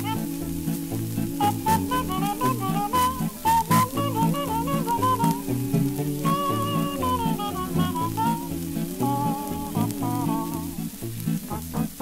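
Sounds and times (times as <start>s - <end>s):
vocal quartet singing: 0.0s - 11.0s
pulsing bass line: 0.0s - 12.0s
record crackle and hiss: 0.0s - 12.0s
strummed guitar chords: 0.0s - 12.0s
wordless horn-like lead vocal: 0.0s - 12.0s.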